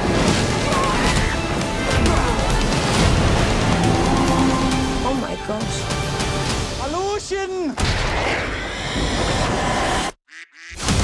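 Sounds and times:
duck quack: 10.3 - 10.8.

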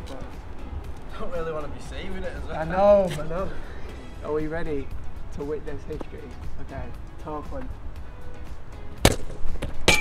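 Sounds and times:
metallic clang: 9.0 - 10.0.

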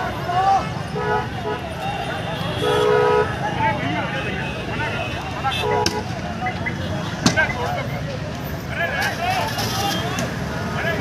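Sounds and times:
people shouting: 0.0 - 2.2
car horns honking: 0.8 - 7.5.

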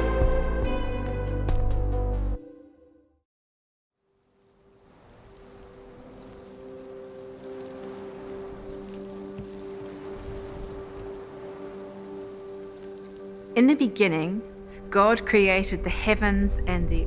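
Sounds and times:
rain hiss: 4.0 - 17.0.

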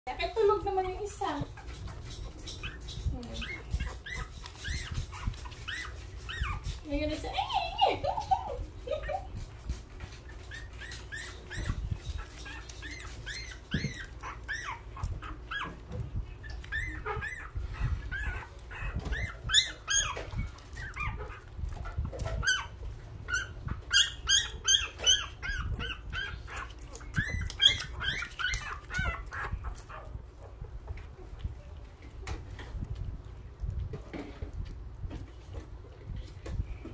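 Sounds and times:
newborn puppies crying: 0.4 - 9.4, 10.2 - 30.2.

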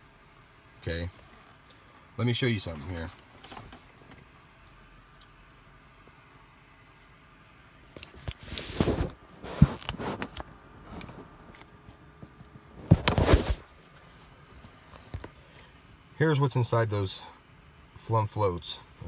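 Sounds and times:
plastic rustling and scraping: 3.2 - 4.2, 8.0 - 13.7.

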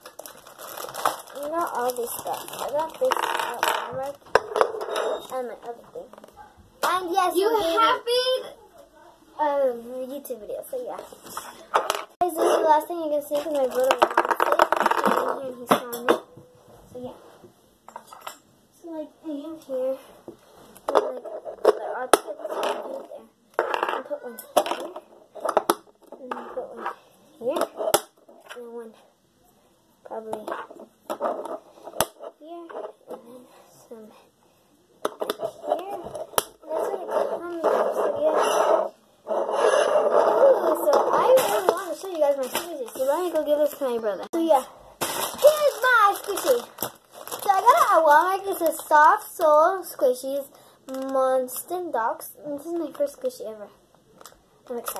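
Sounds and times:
girl talking or half-singing: 45.4 - 46.7.

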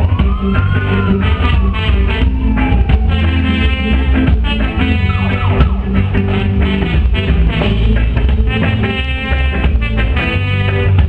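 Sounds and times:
siren-like pitched sweep: 0.0 - 6.6
reggae band playing: 0.0 - 11.0.

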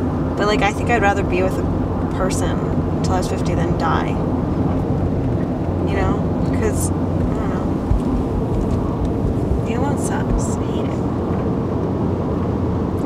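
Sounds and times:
car road and engine noise: 0.0 - 13.0
person speaking: 0.4 - 4.2, 5.8 - 8.0, 9.6 - 11.1.

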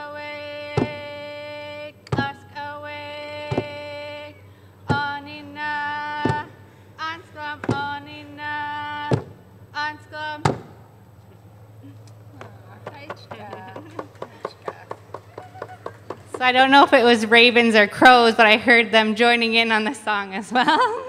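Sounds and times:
woman singing: 0.0 - 10.6.

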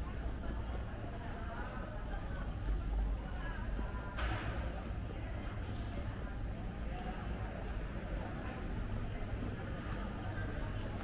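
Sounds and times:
indistinct voices of passers-by: 0.0 - 11.0.

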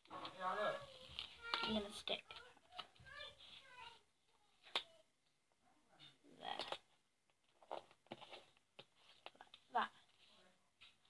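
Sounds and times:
paper and card rustling: 0.0 - 4.0, 7.4 - 11.0.

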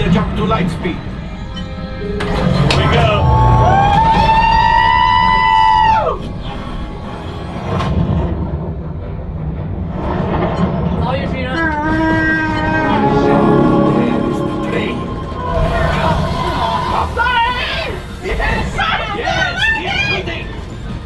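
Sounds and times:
music over low rumble: 12.2 - 17.3.

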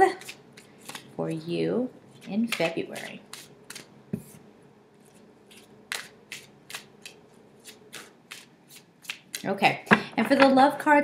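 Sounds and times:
cards being shuffled: 0.2 - 1.1, 2.1 - 4.4, 5.0 - 9.5.

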